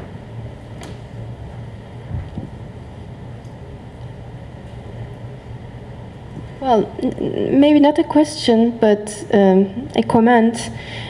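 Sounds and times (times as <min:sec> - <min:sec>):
room noise hum: 0:00.0 - 0:11.0
microphone handling thump: 0:02.1 - 0:02.6.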